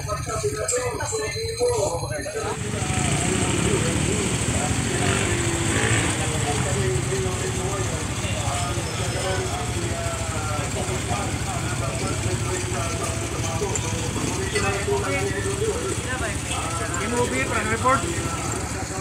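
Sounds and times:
voices talking: 0.0s - 19.0s
motorcycle engine idling: 2.4s - 19.0s.

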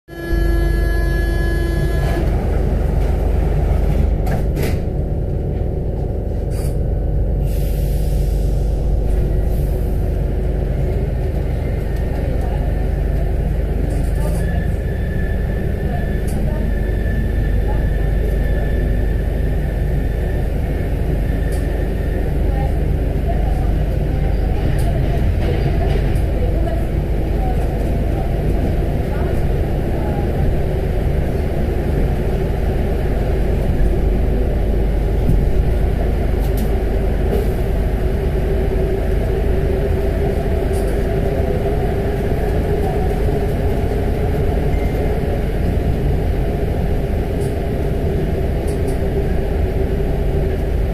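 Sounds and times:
metro train rumble: 0.0s - 50.9s.

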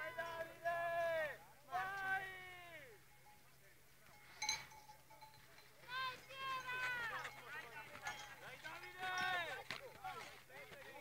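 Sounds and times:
spectators shouting encouragement: 0.0s - 3.0s, 5.9s - 7.3s
brief ringing clink: 4.1s - 5.4s.

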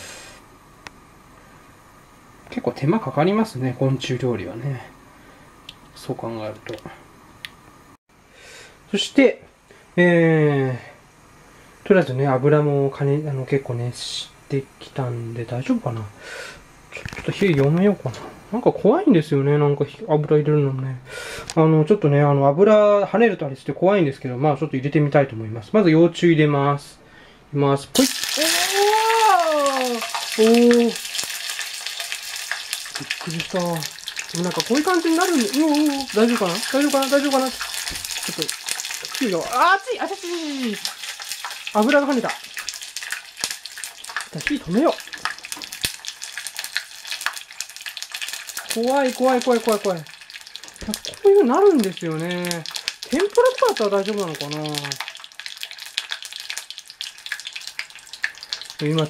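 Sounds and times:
loud frying sizzle: 0.0s - 20.0s, 27.9s - 59.0s
food splashing into hot oil: 28.0s - 59.0s.

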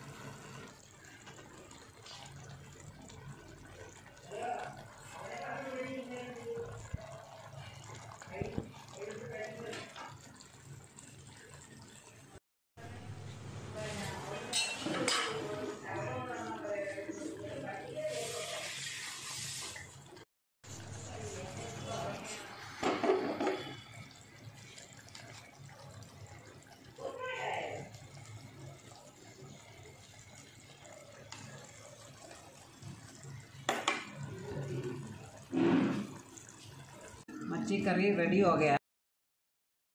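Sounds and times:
curry bubbling and sizzling: 0.0s - 38.8s.

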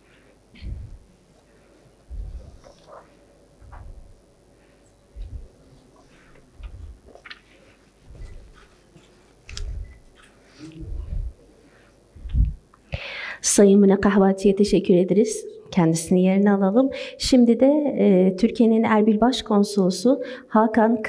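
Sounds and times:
dull low thumps: 0.6s - 1.1s, 2.1s - 2.6s, 3.6s - 4.3s, 5.2s - 5.6s, 6.6s - 7.1s, 9.5s - 10.0s, 10.8s - 11.4s, 12.2s - 12.6s
rustling: 2.1s - 4.3s.

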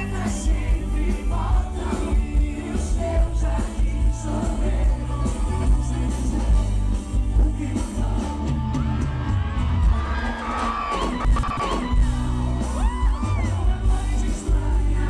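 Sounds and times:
lead vocal singing: 0.0s - 15.0s
live band playing: 0.0s - 15.0s
crowd yelling and whooping: 8.2s - 15.0s.

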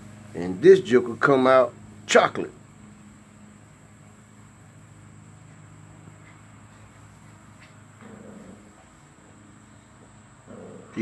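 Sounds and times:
low steady hum: 0.0s - 11.0s
puppies playing: 3.1s - 11.0s.

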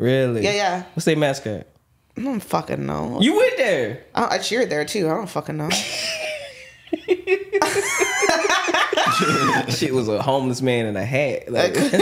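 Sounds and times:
people laughing: 5.7s - 9.9s, 11.7s - 12.0s.

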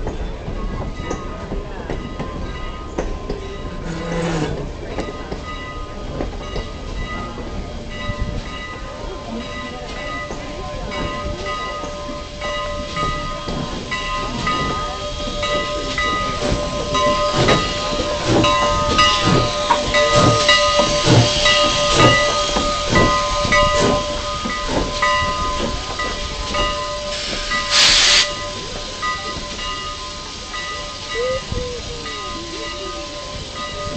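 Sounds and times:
steam locomotive arriving: 0.0s - 33.9s
locomotive bell ringing: 0.1s - 33.9s
burst of steam hiss: 11.2s - 33.9s.

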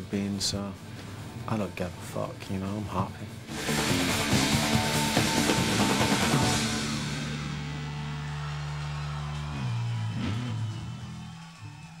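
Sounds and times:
live rock band bass chord: 3.5s - 7.8s.

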